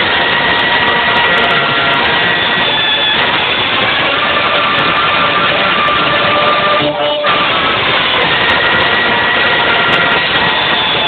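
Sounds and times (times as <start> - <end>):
distorted wind band chords: 0.0 - 11.0.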